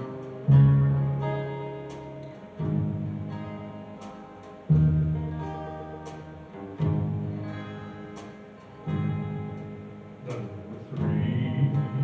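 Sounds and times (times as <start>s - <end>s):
plucked string chords: 0.0s - 12.0s.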